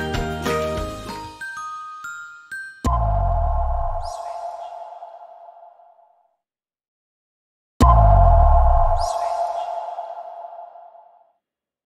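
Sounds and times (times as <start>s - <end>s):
ringing tone: 2.3s - 6.0s, 7.8s - 11.2s
sharp hit with deep boom: 7.8s - 10.1s.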